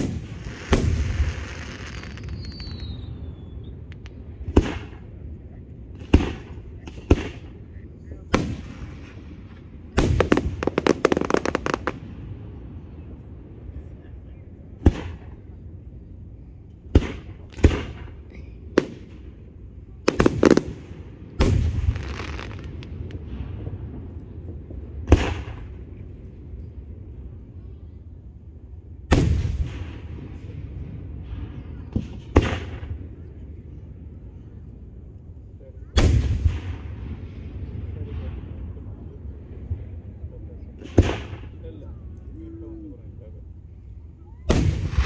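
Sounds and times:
firework booms: 0.0s - 5.3s, 5.9s - 13.1s, 14.7s - 15.6s, 16.8s - 19.4s, 20.0s - 26.3s, 29.1s - 33.8s, 35.8s - 41.7s, 44.4s - 45.0s.

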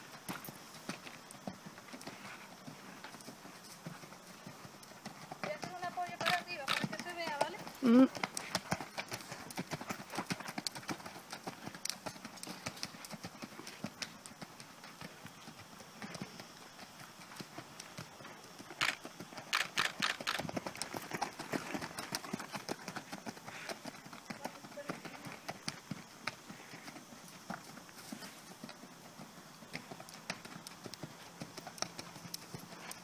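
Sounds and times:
horse hooves trotting on sand: 0.0s - 33.0s
person speaking: 5.7s - 8.1s.

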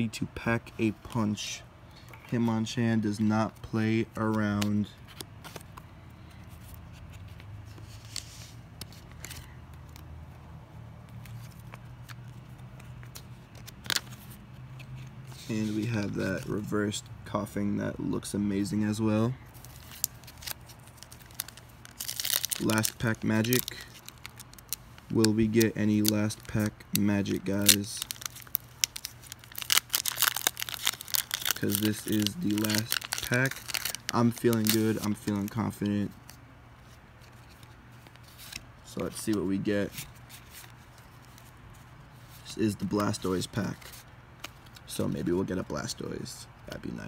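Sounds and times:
cards rustling in plastic sleeves: 0.2s - 47.0s
foil wrapper tearing: 19.6s - 35.8s.

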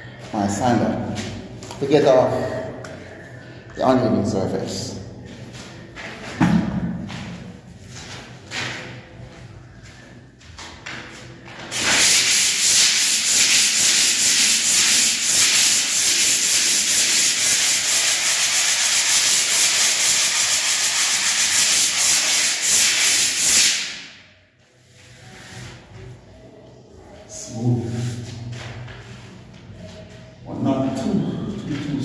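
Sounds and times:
sanding block scraping plaster wall: 11.7s - 24.1s.

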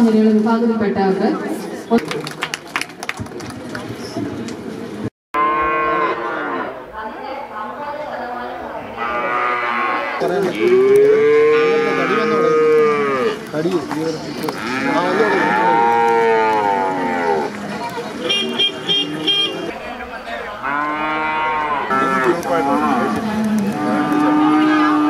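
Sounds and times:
cattle mooing: 5.4s - 6.8s, 8.8s - 13.4s, 14.5s - 17.6s, 20.6s - 25.0s.

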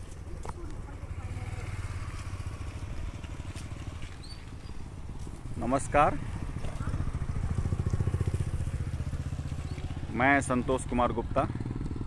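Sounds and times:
vehicle engine running at low revs: 0.1s - 12.0s.

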